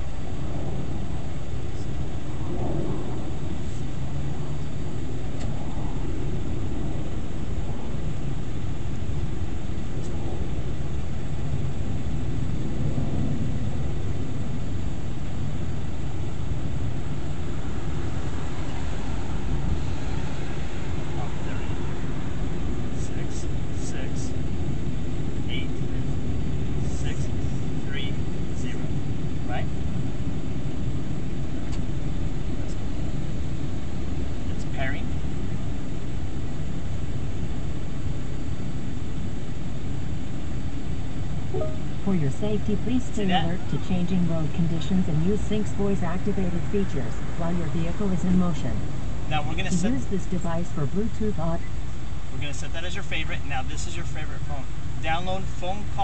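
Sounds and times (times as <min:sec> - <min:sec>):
car engine idling: 0:03.1 - 0:12.8, 0:13.4 - 0:56.0.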